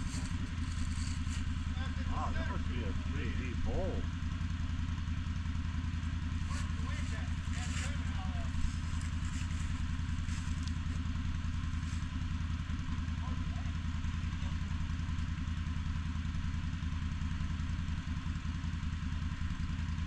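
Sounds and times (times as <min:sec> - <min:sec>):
atv engine idling: 0:00.0 - 0:20.0.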